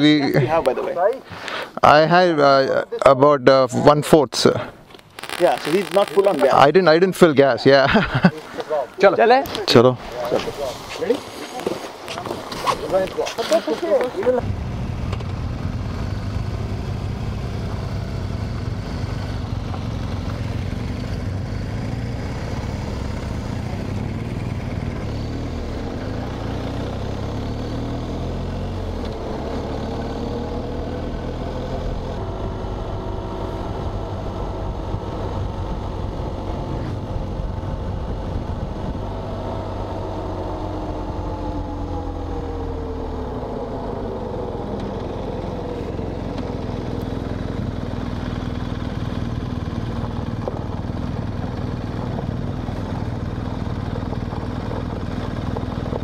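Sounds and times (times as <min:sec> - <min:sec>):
road and wind noise: 0:00.0 - 0:56.0
motorcycle engine running: 0:14.1 - 0:56.0.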